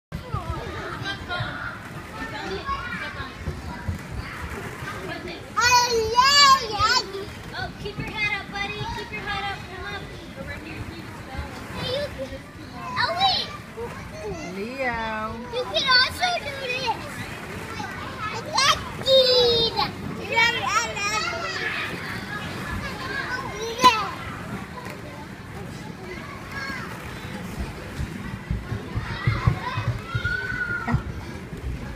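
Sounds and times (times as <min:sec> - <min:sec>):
children chattering: 0:00.1 - 0:31.9.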